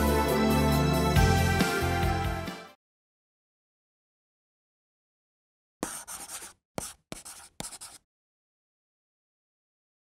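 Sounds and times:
pen scratching on paper: 5.8s - 8.0s.

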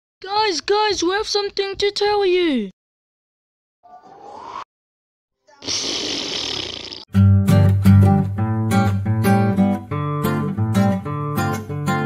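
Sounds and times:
cartoon explosion rush: 5.6s - 7.0s.

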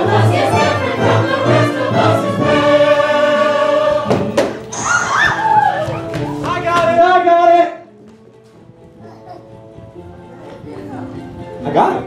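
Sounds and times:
chorus singing with accompaniment: 0.0s - 4.9s.

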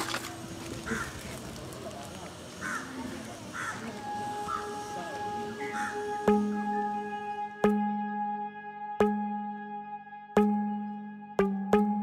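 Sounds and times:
crows cawing: 0.7s - 1.6s, 2.5s - 6.3s
soft background music: 3.6s - 12.0s.

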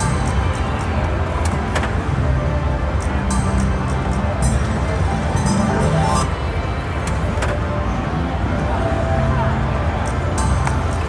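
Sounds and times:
slot machines rumble and music: 0.0s - 11.0s.

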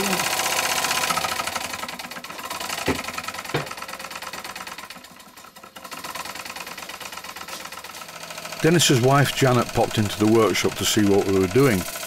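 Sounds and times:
steam engine running fast: 0.0s - 12.0s.

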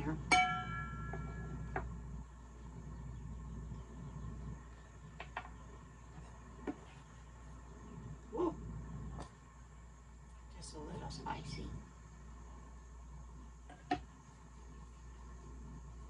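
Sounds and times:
air fryer humming: 0.0s - 16.0s.

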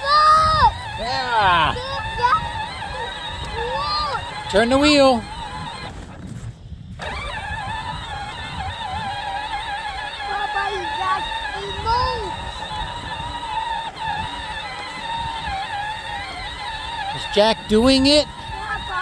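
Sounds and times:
electric toy vehicle motor whining: 0.0s - 19.0s.

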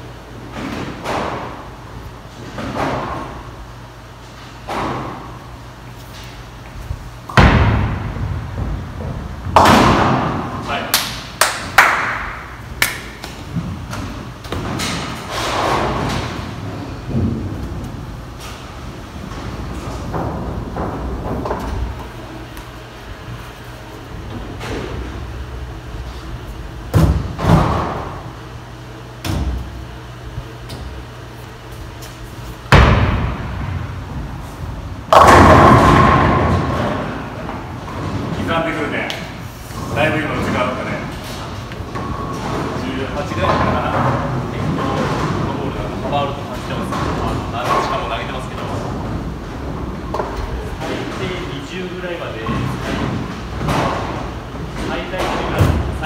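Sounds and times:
bowling balls thudding and rolling: 0.2s - 56.0s
bowling pins crashing: 7.3s - 10.6s, 13.5s - 18.2s, 18.8s - 22.4s, 26.8s - 28.3s, 32.7s - 38.8s, 39.8s - 51.3s, 52.4s - 56.0s.

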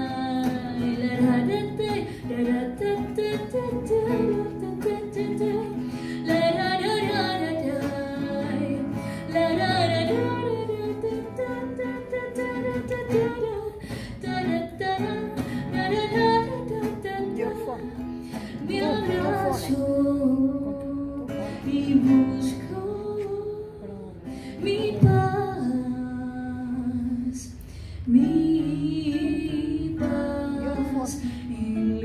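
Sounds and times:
plucked acoustic guitar: 0.0s - 32.0s
woman singing: 0.0s - 32.0s
person singing wordless melody: 18.6s - 32.0s.

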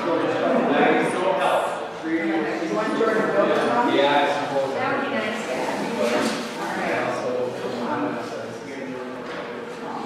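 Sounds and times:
indistinct conversation: 0.0s - 10.0s.

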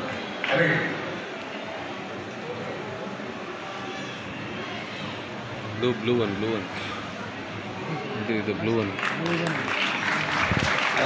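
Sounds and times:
faint indistinct voices: 0.0s - 11.0s
fan-like hum: 0.0s - 11.0s.

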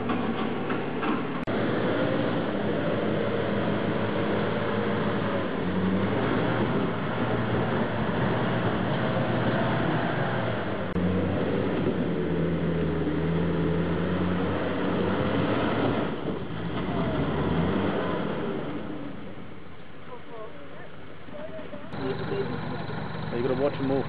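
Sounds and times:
vehicle engine working under load: 0.0s - 24.0s.

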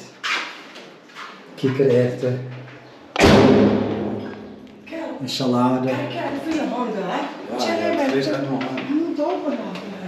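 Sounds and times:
loud thump: 3.2s - 4.6s.

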